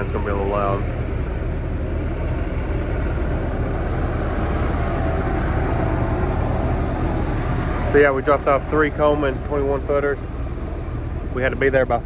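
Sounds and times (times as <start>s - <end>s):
truck engine running: 0.0s - 12.0s.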